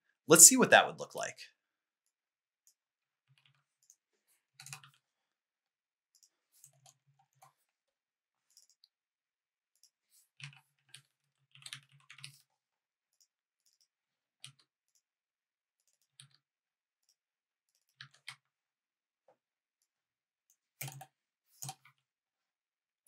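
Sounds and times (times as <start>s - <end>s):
keyboard typing: 20.8s - 21.9s.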